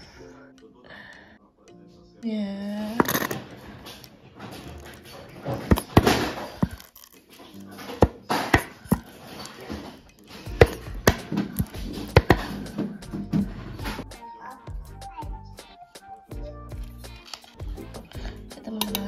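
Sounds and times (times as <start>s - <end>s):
background music: 0.0s - 19.0s
squeeze bottle popping and spurting: 4.6s - 9.6s.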